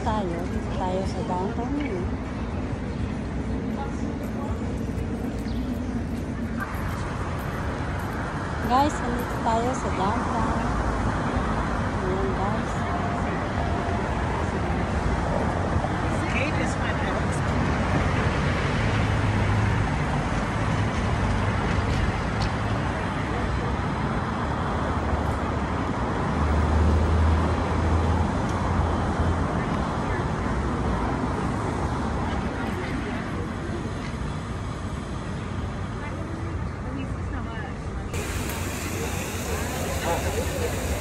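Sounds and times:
street traffic rumble: 0.0s - 41.0s.

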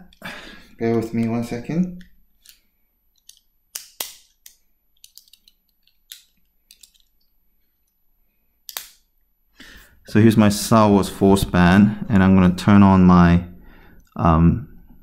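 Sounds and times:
handling clicks: 3.2s - 8.0s.

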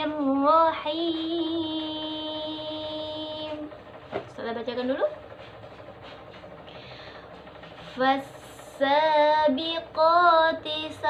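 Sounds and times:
woman chanting recitation: 8.0s - 11.0s.

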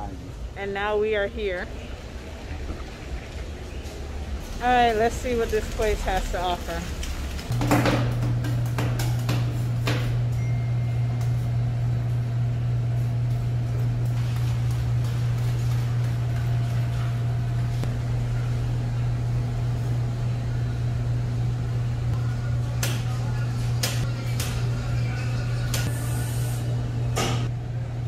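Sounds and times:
low machine hum: 0.0s - 28.0s.

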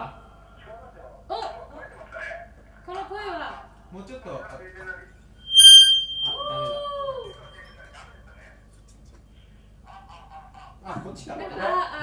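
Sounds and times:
loud high-pitched beep: 5.5s - 6.7s.

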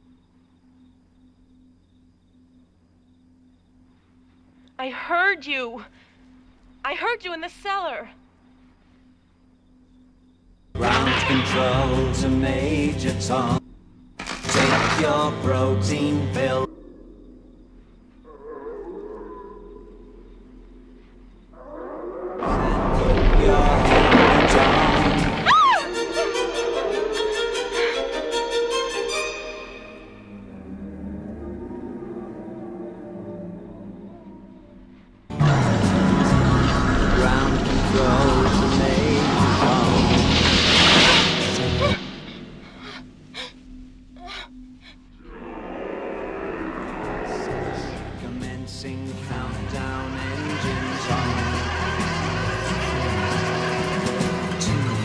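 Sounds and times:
eerie howl-like moan: 16.3s - 28.4s, 29.7s - 55.0s.

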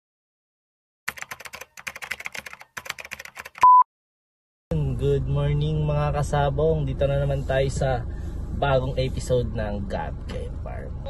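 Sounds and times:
keyboard typing clicks: 1.1s - 3.8s
test-tone beep: 3.6s - 3.8s.

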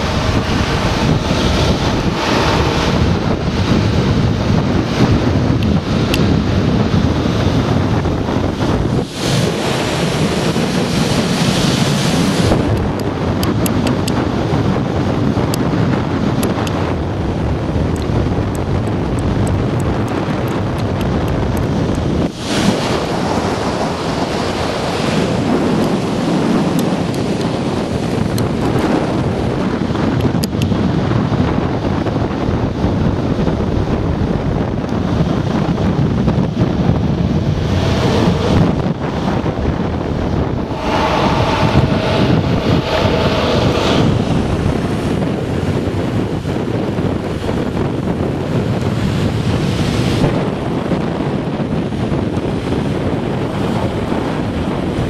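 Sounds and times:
wind rushing over microphone: 0.0s - 55.0s
short whine: 37.3s - 46.7s.

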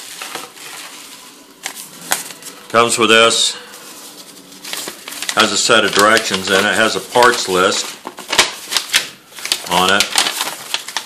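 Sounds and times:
bubble wrap crinkling: 0.0s - 2.6s, 3.7s - 11.0s.

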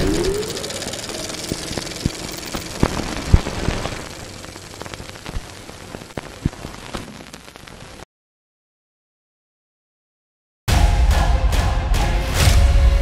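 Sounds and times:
crackling fizzing texture: 0.0s - 8.1s.

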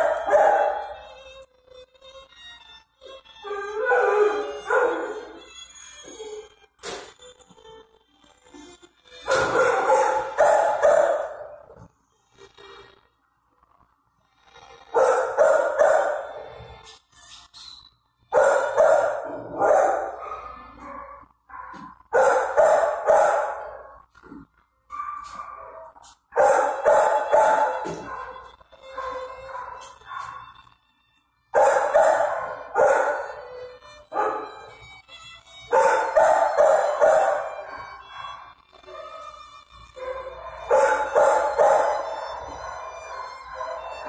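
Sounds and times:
dogs barking in kennel: 0.0s - 1.1s, 3.5s - 5.4s, 9.2s - 11.8s, 14.9s - 16.7s, 18.3s - 24.3s, 24.9s - 30.7s, 31.6s - 34.7s, 35.7s - 44.0s.

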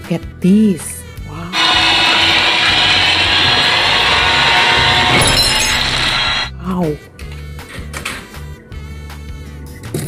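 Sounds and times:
loud rushing roar: 1.5s - 6.5s.

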